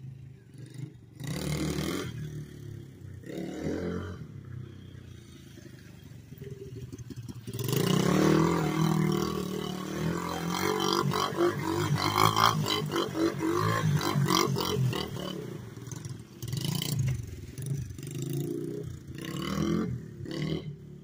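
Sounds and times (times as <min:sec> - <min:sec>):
pit bike engine revving: 0:00.5 - 0:21.0.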